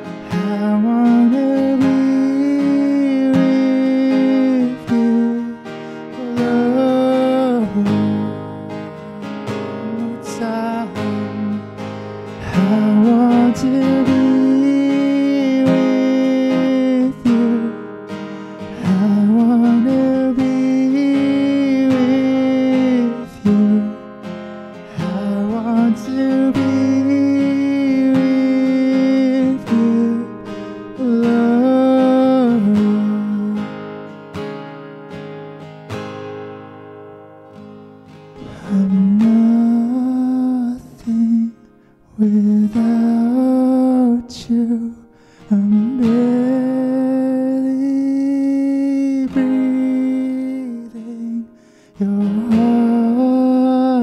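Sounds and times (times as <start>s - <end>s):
man singing: 0.0s - 34.1s, 38.4s - 54.0s
strummed acoustic guitar: 0.0s - 54.0s.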